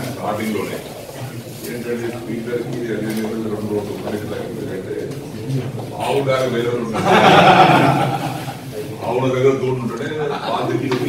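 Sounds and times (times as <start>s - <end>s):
men laughing: 6.8s - 8.9s, 9.8s - 11.0s.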